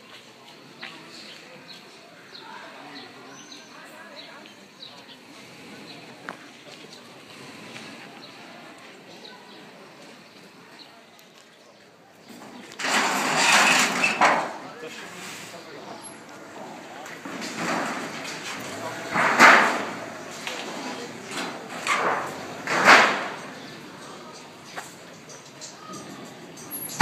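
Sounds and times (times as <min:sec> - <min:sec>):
low street background: 0:00.0 - 0:27.0.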